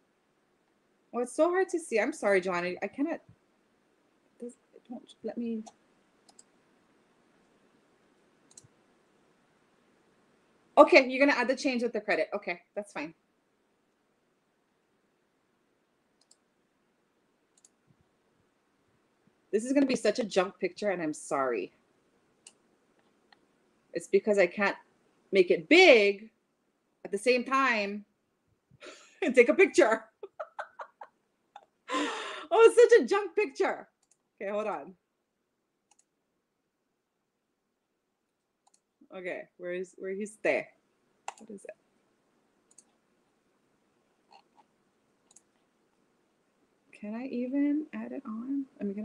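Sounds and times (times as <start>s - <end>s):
computer mouse clicks: 5.6s - 6.6s, 8.4s - 8.8s, 16.2s - 16.5s, 17.5s - 17.8s, 22.4s - 23.5s, 34.0s - 34.2s, 35.9s - 36.1s, 38.6s - 38.9s, 41.2s - 41.6s, 42.6s - 43.0s, 44.3s - 45.7s.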